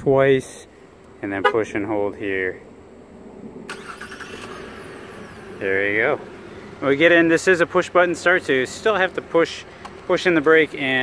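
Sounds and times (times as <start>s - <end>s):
car engine starting and running: 3.4s - 11.0s.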